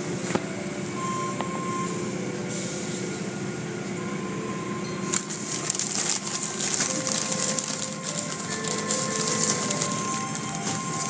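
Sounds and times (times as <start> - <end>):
car wash machinery hum: 0.0 - 11.0.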